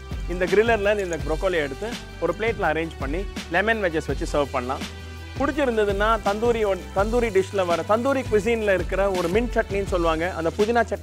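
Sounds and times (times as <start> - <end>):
background music with low bass: 0.0 - 11.0
person speaking: 0.3 - 11.0.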